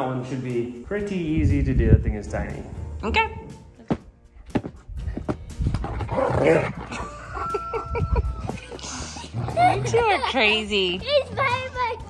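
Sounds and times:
child laughing: 0:06.9 - 0:11.9.

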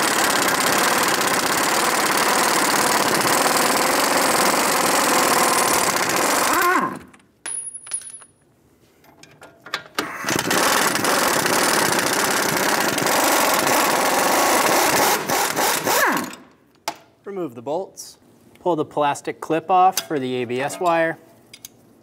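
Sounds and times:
pneumatic impact wrench whining: 0:00.0 - 0:07.2, 0:10.0 - 0:16.5.

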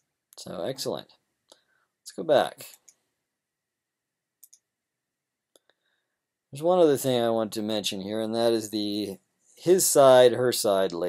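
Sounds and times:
computer mouse clicks: 0:04.4 - 0:04.7.

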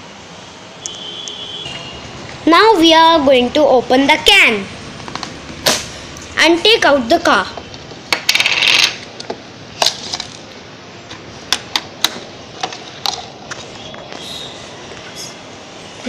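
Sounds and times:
plastic packaging clattering: 0:09.8 - 0:10.5
plastic parts clicking and knocking: 0:11.1 - 0:13.7.

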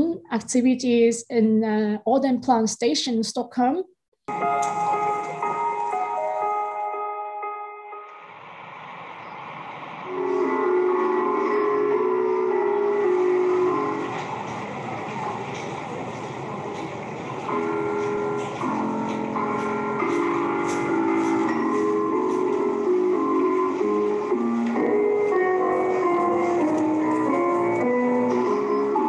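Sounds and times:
piano notes from staircase steps: 0:04.3 - 0:08.3, 0:10.1 - 0:29.0
subway station noise: 0:04.3 - 0:29.0
trains: 0:04.3 - 0:29.0.

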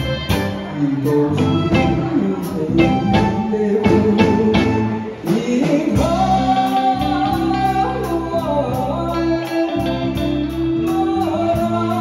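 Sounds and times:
music with steady beat: 0:00.0 - 0:12.0
man singing into a microphone: 0:00.5 - 0:12.0.

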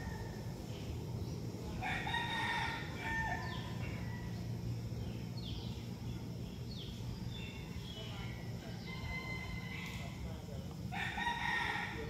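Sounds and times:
bird calls: 0:00.0 - 0:10.2
steady low hum: 0:00.0 - 0:12.0
rooster crowing: 0:01.8 - 0:04.5, 0:08.8 - 0:10.2, 0:10.9 - 0:12.0.

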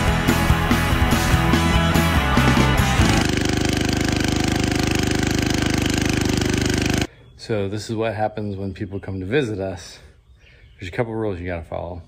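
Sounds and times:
rock music: 0:00.0 - 0:03.3
small engine running: 0:00.0 - 0:07.1.

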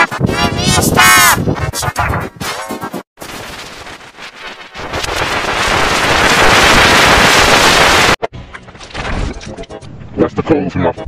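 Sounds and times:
harsh distorted noise: 0:00.0 - 0:08.3.

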